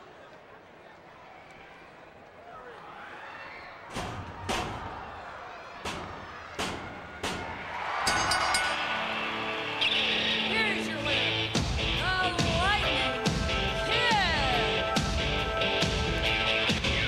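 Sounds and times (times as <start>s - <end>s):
music: 8.7s - 17.0s.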